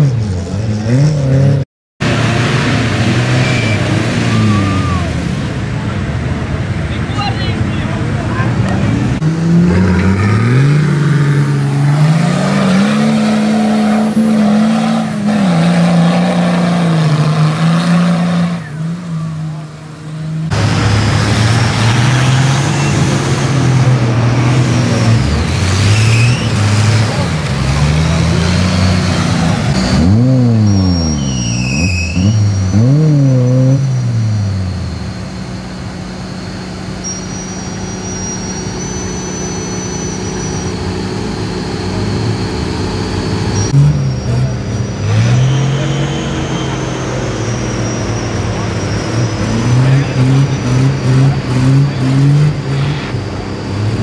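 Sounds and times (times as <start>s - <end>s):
off-road engines revving in mud: 0.0s - 54.0s.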